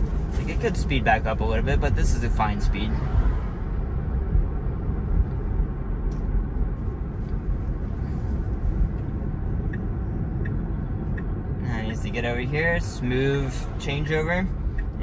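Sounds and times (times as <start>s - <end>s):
road and tyre noise in car: 0.0s - 15.0s.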